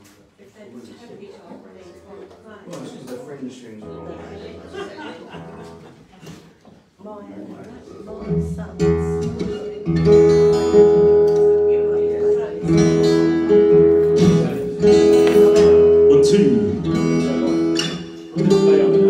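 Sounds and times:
acoustic guitar chords ringing: 0:03.8 - 0:05.8, 0:08.1 - 0:19.0.

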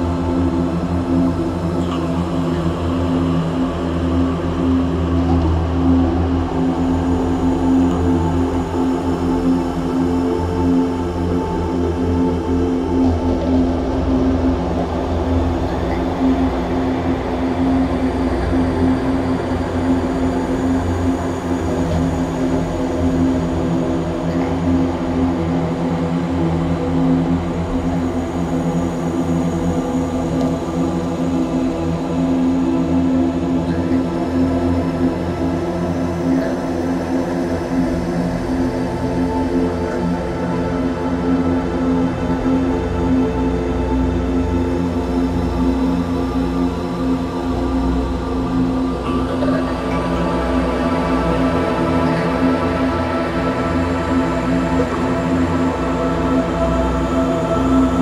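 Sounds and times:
dark ambient drone music: 0:00.0 - 0:58.0.

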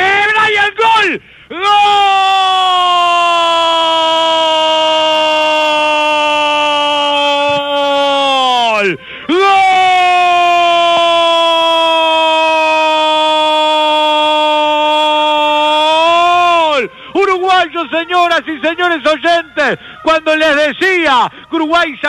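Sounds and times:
commentator's long goal cry: 0:00.9 - 0:22.0
quick breath: 0:01.2 - 0:01.5, 0:09.0 - 0:09.3, 0:16.9 - 0:17.2, 0:19.8 - 0:20.0.

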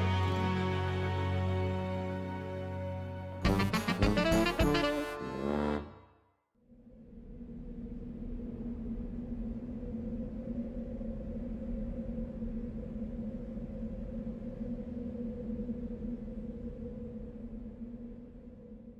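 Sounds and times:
steady low drone: 0:00.0 - 0:05.9.

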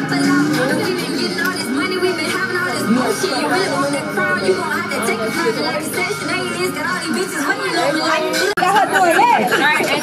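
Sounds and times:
background music: 0:00.0 - 0:10.0
indistinct voices talking: 0:00.0 - 0:10.0.

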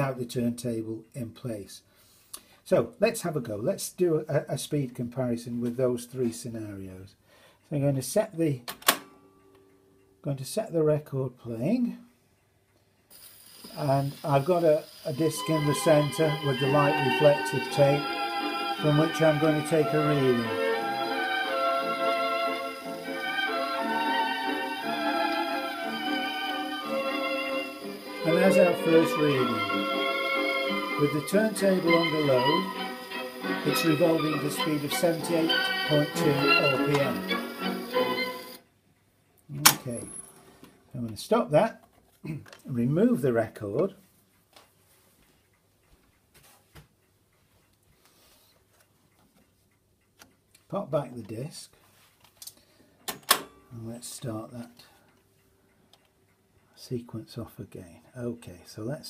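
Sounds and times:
gramophone record music: 0:10.2 - 0:59.0.

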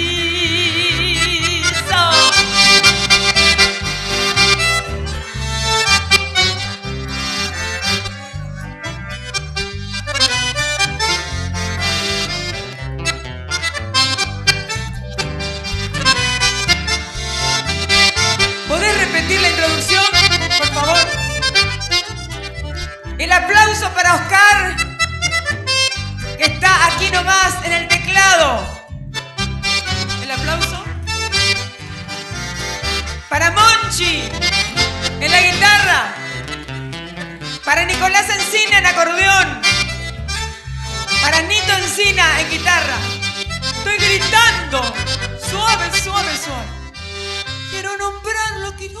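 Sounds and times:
accordion melody: 0:00.0 - 0:49.0
keyboard: 0:00.0 - 0:49.0
steady bass beat: 0:01.2 - 0:47.7
strummed acoustic guitars: 0:01.8 - 0:23.2, 0:29.1 - 0:33.3, 0:34.0 - 0:46.2.

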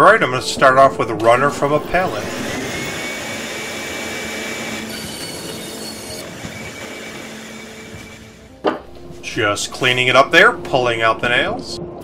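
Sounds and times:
bandsaw cutting wood: 0:01.9 - 0:08.6.

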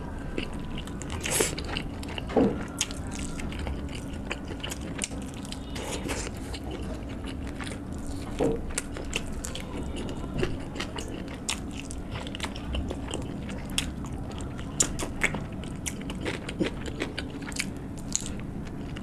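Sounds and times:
eating rice by hand: 0:00.0 - 0:19.0
person chewing meat: 0:00.0 - 0:19.0.

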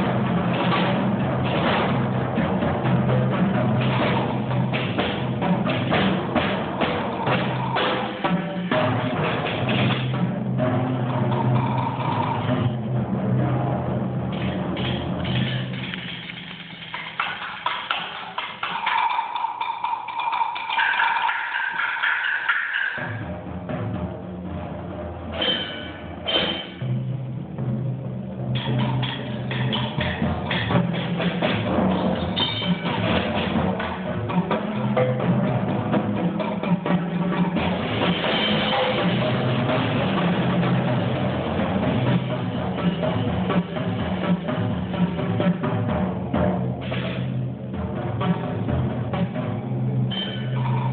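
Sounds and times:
percussion ensemble playing: 0:00.0 - 0:50.9
ringing mallet tones: 0:32.4 - 0:33.0, 0:50.1 - 0:50.9.

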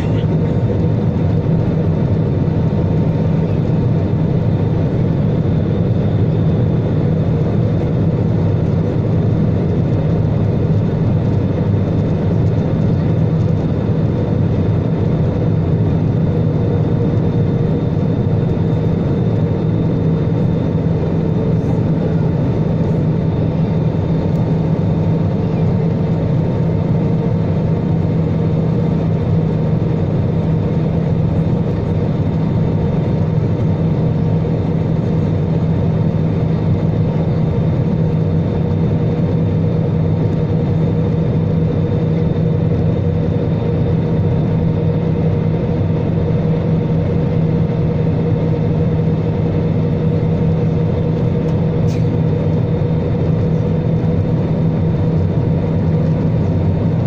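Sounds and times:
jet engines and airflow rumble: 0:00.0 - 0:57.0.

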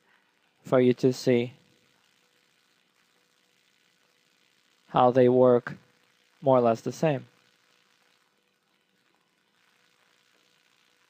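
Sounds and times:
faint microphone hiss: 0:00.0 - 0:11.0
faint steady hum: 0:00.0 - 0:11.0.

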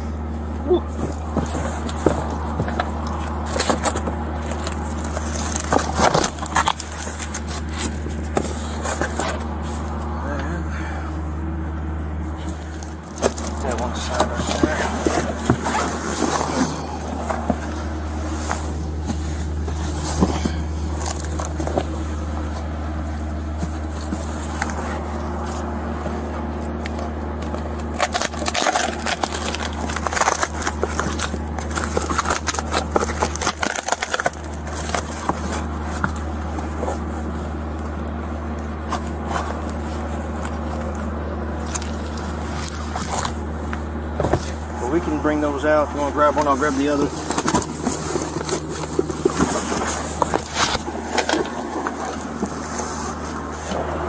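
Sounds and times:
steady low hum: 0:00.0 - 0:54.0
items rustling and knocking: 0:00.7 - 0:10.1, 0:12.3 - 0:45.0, 0:46.0 - 0:54.0.

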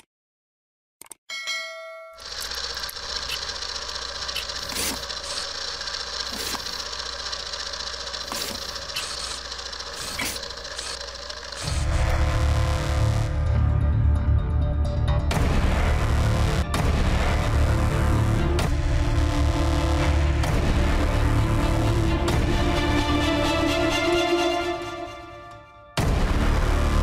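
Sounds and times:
bell-like chime: 0:01.3 - 0:02.3
deep bass rumble: 0:11.7 - 0:23.8.

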